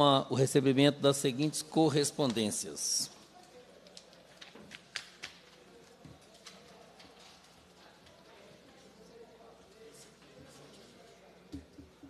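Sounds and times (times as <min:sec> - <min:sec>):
murmur of background voices: 0:00.0 - 0:12.0.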